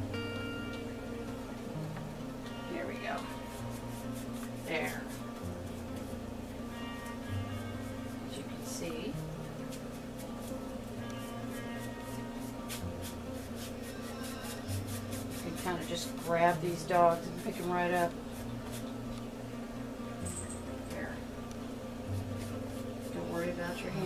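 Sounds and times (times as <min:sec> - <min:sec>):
music with held notes: 0:00.0 - 0:16.1
paintbrush tapping and brushing canvas: 0:12.7 - 0:18.9.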